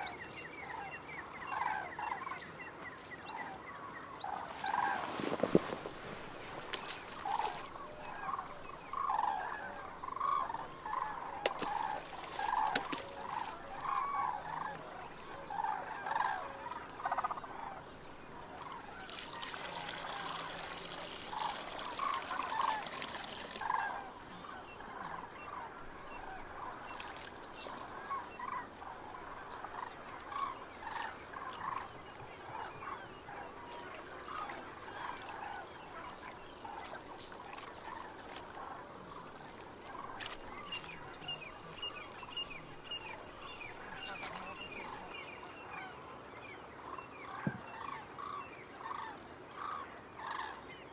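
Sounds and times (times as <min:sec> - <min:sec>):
birds calling: 0:00.0 - 0:46.0
water poured into metal bowl: 0:18.4 - 0:24.2, 0:25.9 - 0:32.6, 0:33.6 - 0:45.1.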